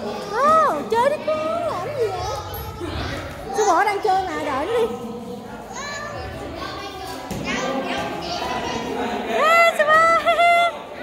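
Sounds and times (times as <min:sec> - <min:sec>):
children playing: 0:00.0 - 0:11.0.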